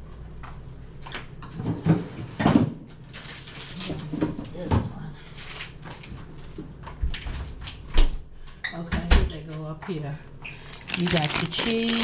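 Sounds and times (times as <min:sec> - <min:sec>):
kitchen knocks and clunks: 0:01.6 - 0:02.8.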